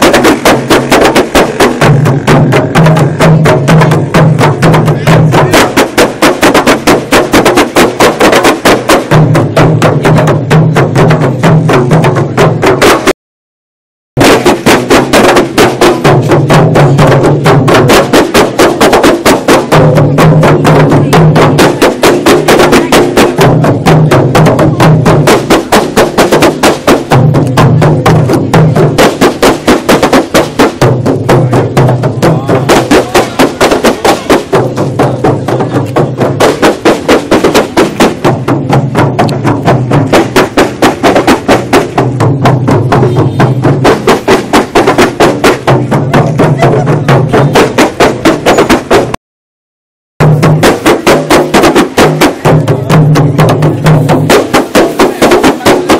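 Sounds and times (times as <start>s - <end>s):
deeper drum sound: 0.0s - 13.2s, 14.2s - 49.2s, 50.2s - 55.9s
frame drums played fast: 0.0s - 13.2s, 14.2s - 49.2s, 50.2s - 55.9s.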